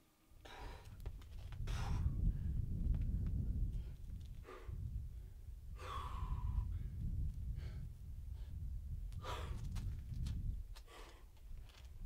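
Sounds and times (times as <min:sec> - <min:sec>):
person breathing hard: 0:00.4 - 0:01.0, 0:01.6 - 0:02.6, 0:03.7 - 0:08.6, 0:09.2 - 0:09.6, 0:10.8 - 0:11.4.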